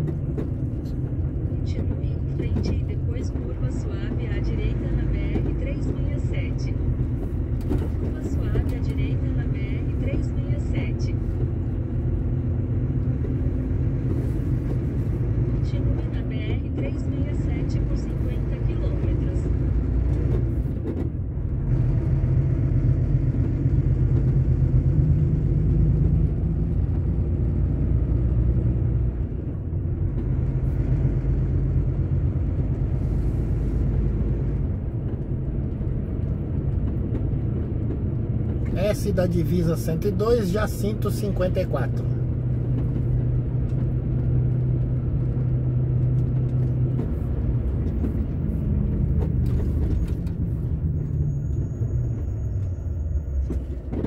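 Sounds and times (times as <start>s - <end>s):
truck diesel engine rumble: 0.0s - 54.0s.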